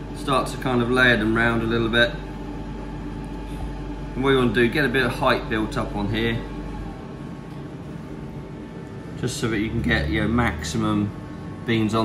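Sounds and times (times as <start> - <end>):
kitchen machinery hum: 0.0 - 12.0.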